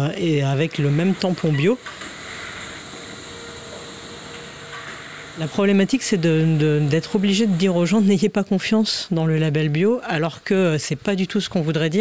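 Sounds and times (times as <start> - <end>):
packaging line machinery running: 0.0 - 8.3.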